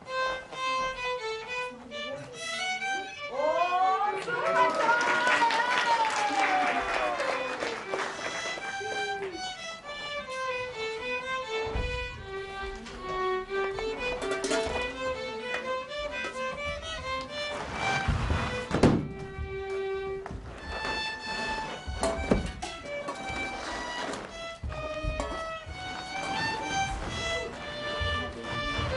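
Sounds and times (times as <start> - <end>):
violins playing folk melody: 0.0 - 4.0, 6.8 - 28.9
dull thuds on stage floor: 18.0 - 19.6, 21.9 - 22.8.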